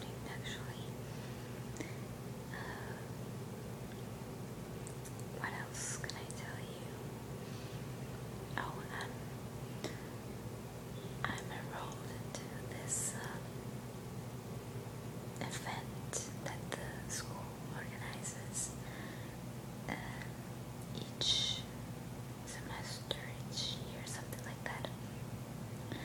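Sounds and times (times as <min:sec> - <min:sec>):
woman whispering: 0:00.0 - 0:01.0, 0:02.5 - 0:03.1, 0:05.4 - 0:07.0, 0:08.6 - 0:09.2, 0:11.2 - 0:13.5, 0:15.4 - 0:18.8, 0:19.9 - 0:21.7, 0:22.5 - 0:25.1
steady low hum: 0:00.0 - 0:26.0.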